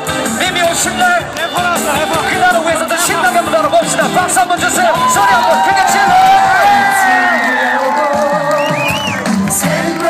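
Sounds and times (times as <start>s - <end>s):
loud live music: 0.0s - 10.0s
crowd cheering and whooping: 4.8s - 10.0s.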